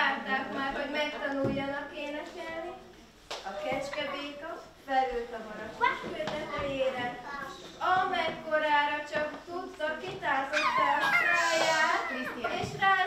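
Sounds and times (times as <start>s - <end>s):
woman making animal-like sung calls: 10.5s - 12.4s.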